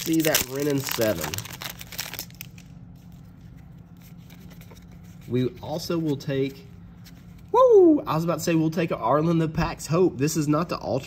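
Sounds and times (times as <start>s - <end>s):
cards rustling and ticking: 0.0s - 5.4s
low steady hum: 0.0s - 11.0s.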